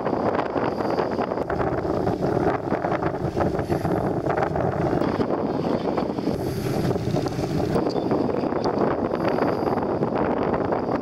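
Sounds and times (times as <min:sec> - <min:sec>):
boat rushing through water: 0:00.0 - 0:11.0
wind buffeting microphone: 0:00.0 - 0:11.0.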